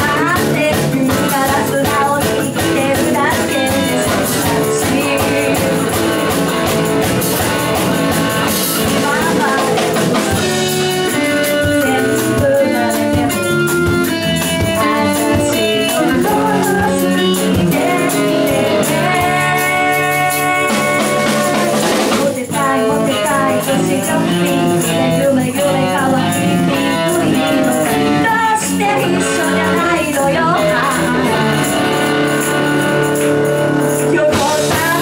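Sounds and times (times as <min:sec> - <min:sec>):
woman singing: 0:00.0 - 0:06.8, 0:08.7 - 0:35.0
acoustic guitar: 0:00.0 - 0:35.0
bass guitar: 0:00.0 - 0:35.0
drums: 0:00.0 - 0:35.0
electric guitar: 0:00.0 - 0:35.0.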